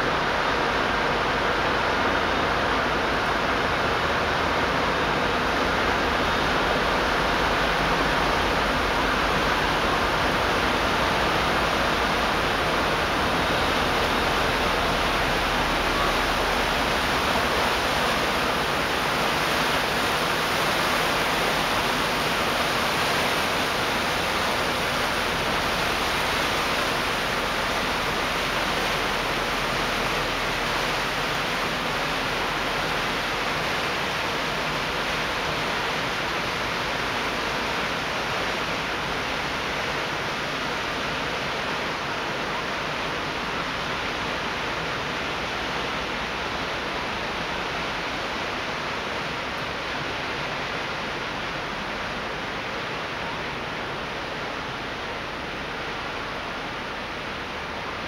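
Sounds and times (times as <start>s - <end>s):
rushing water: 0.0s - 58.0s.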